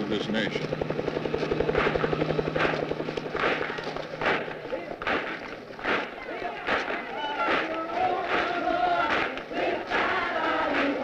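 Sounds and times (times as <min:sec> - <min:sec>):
steady low hum: 0:00.0 - 0:06.2
helicopter rotor chopping: 0:00.0 - 0:11.0.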